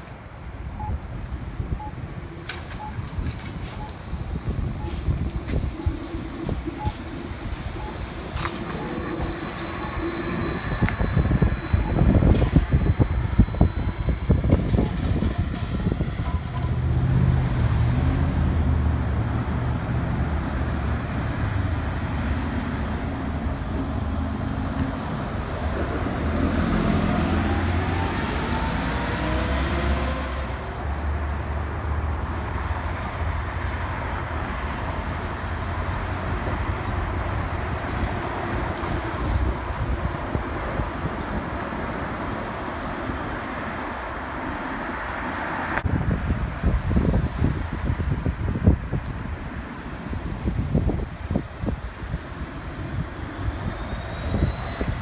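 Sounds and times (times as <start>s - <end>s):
bus engine humming and whining: 0.0s - 55.0s
street traffic: 0.0s - 55.0s
trolleybus whine: 0.0s - 55.0s.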